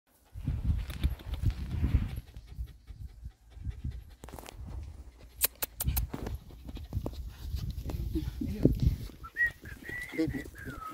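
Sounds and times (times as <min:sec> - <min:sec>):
dog panting: 0:01.9 - 0:08.4.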